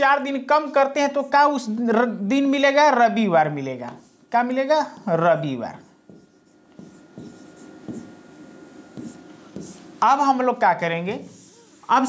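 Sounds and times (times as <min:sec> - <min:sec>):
pen scratching on touchscreen: 0:05.8 - 0:08.3, 0:08.9 - 0:09.9.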